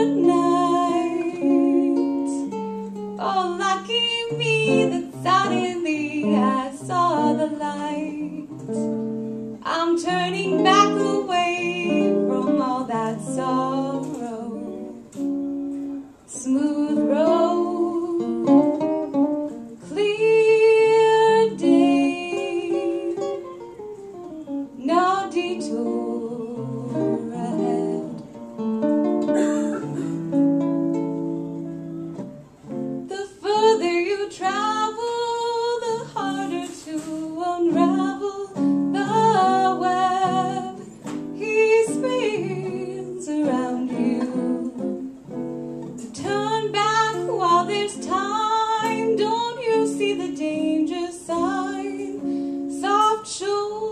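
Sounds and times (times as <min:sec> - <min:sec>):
woman singing jazz ballad: 0:00.0 - 0:02.6, 0:03.2 - 0:09.0, 0:09.6 - 0:15.7, 0:16.3 - 0:23.8, 0:24.4 - 0:28.3, 0:33.0 - 0:45.4, 0:46.0 - 0:53.9
electric jazz guitar: 0:00.0 - 0:53.9.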